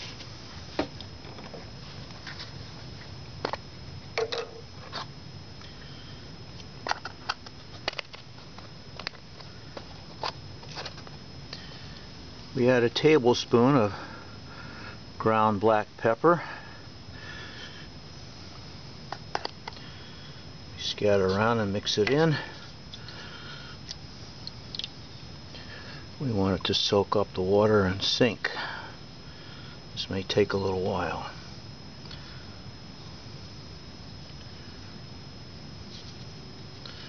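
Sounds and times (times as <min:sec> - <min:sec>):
faint high whine: 0:00.0 - 0:37.0
low room hum: 0:00.0 - 0:37.0
small ticks: 0:23.8 - 0:25.0.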